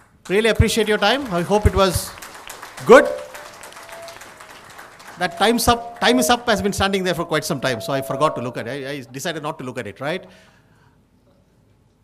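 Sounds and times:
audience applause: 0:00.0 - 0:06.9
faint ringing tone: 0:02.9 - 0:04.4, 0:05.2 - 0:09.0.

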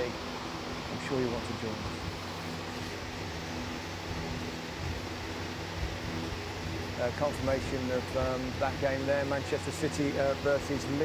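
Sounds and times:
steady background hum and hiss: 0:00.0 - 0:11.0.

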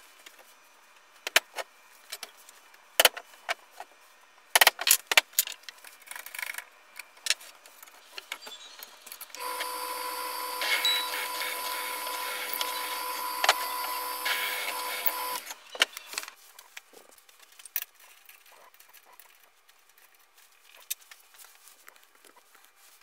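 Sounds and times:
drill press motor running: 0:09.4 - 0:15.6.

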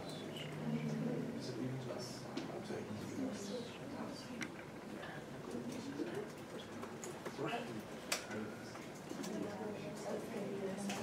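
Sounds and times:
students talking: 0:00.0 - 0:11.0.

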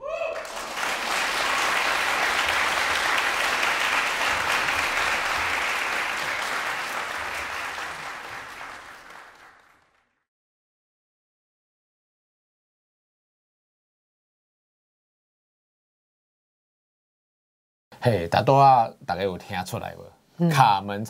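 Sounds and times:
audience applauding: 0:00.2 - 0:10.2.

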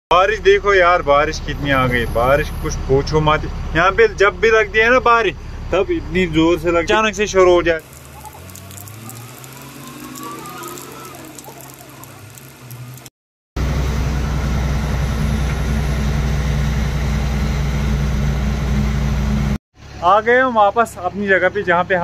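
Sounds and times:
truck diesel engine pulling away: 0:00.8 - 0:19.6
rain hissing: 0:07.8 - 0:13.2
engine drone inside truck cab: 0:13.6 - 0:20.0.

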